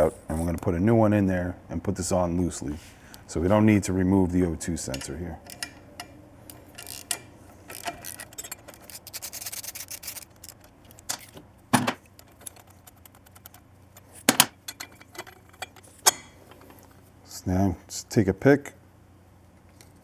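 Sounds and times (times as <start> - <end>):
socket ratchet clicking: 4.9 - 11.2.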